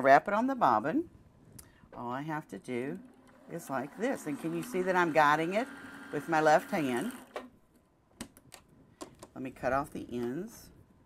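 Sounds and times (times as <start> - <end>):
bobbin winder whirring: 2.5 - 7.5.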